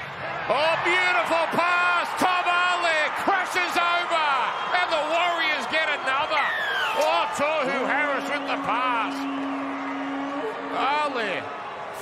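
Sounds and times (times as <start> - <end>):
excited male sports commentary: 0.4 - 9.4, 10.5 - 11.6.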